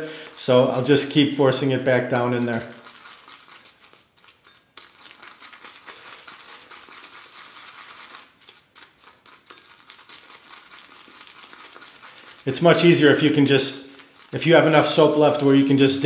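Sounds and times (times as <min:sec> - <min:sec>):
shaving brush scrubbing soap in bowl: 0:00.1 - 0:16.0.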